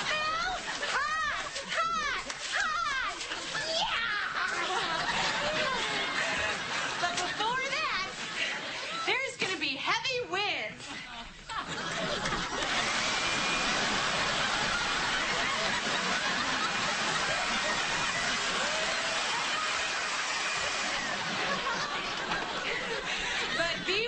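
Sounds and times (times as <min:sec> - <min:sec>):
people laughing: 0:00.0 - 0:09.2, 0:10.8 - 0:24.0
electric blower rush of air: 0:12.5 - 0:22.6.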